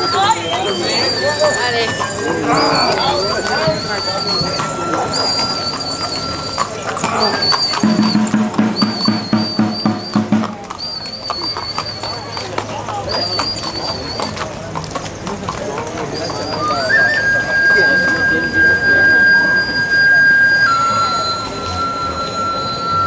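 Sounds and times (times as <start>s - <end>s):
horse hooves clip-clopping on pavement: 0.0s - 17.3s
crowd voices: 0.0s - 23.0s.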